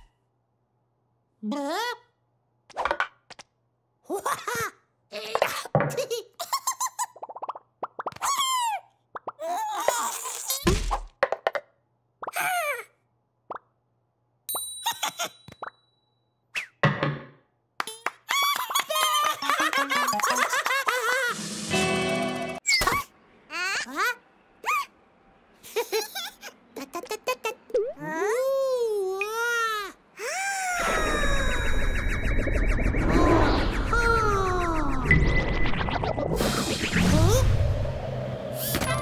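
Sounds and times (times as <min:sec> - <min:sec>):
playful music: 0:19.4 - 0:22.6
comic sound effects: 0:19.6 - 0:20.6, 0:30.8 - 0:37.9
cartoon characters squeaking and chattering: 0:33.1 - 0:35.1.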